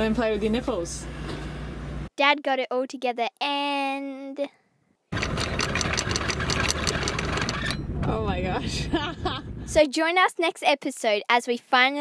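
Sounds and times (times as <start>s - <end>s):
rapid even clicking of chain gypsy: 5.1s - 7.8s
windlass motor humming: 5.1s - 9.8s.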